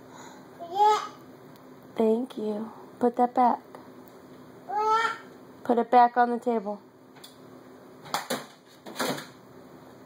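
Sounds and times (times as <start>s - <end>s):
plastic cases knocking and clattering: 8.1s - 9.4s.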